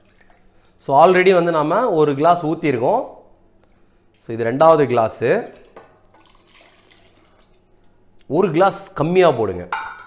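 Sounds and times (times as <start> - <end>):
liquid dripping and trickling: 0.0 - 0.8, 5.3 - 8.3.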